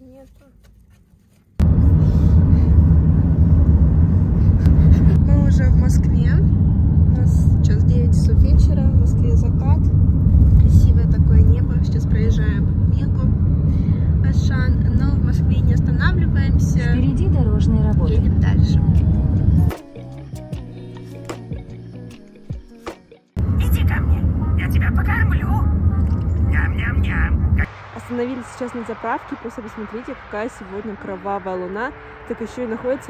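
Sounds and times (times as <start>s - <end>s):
car driving low rumble: 1.5s - 19.7s, 23.4s - 33.0s
indistinct voices: 4.4s - 19.8s, 23.4s - 33.0s.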